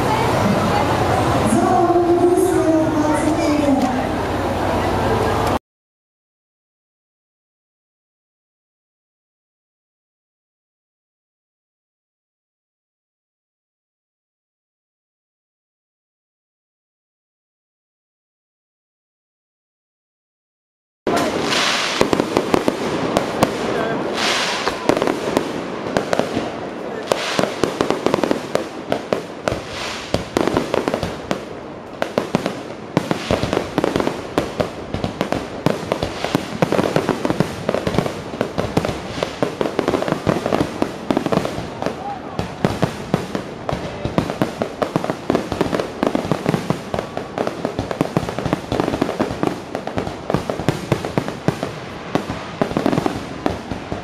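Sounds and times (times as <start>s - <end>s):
fireworks bangs: 21.1s - 54.0s
fireworks crackling and popping: 21.1s - 54.0s.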